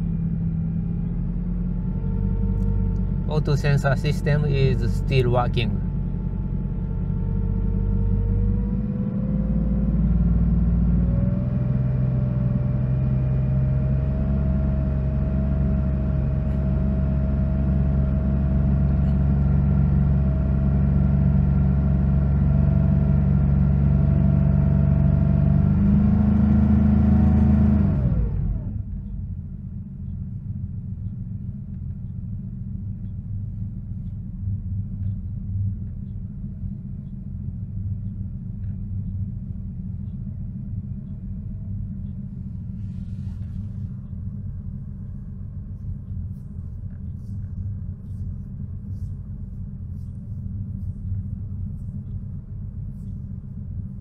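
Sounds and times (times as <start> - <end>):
car engine revving and idling: 0.0 - 30.1, 38.6 - 54.0.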